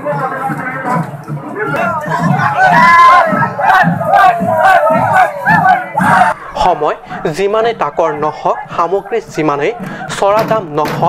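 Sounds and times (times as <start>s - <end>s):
large crowd shouting: 1.5s - 11.0s.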